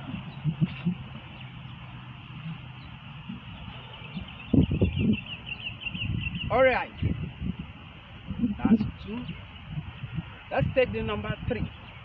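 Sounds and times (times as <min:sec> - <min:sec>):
small birds chirping: 0:00.0 - 0:12.0
dull low thumps: 0:03.2 - 0:10.4.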